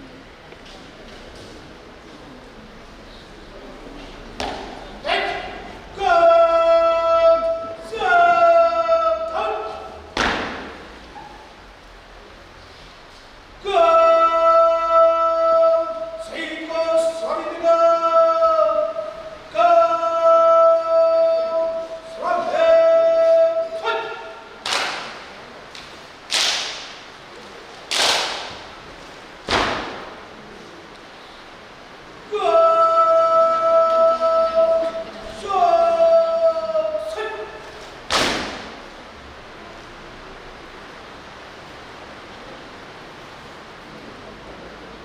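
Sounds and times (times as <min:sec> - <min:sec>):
sharp thud echoing in hall: 0:04.3 - 0:05.8, 0:09.4 - 0:11.4, 0:23.7 - 0:25.4, 0:26.3 - 0:27.1, 0:27.9 - 0:28.8, 0:29.4 - 0:30.4, 0:38.0 - 0:39.0
person shouting a command: 0:05.0 - 0:10.5, 0:13.6 - 0:25.0, 0:32.3 - 0:37.8
singing: 0:13.6 - 0:24.4, 0:32.3 - 0:37.6.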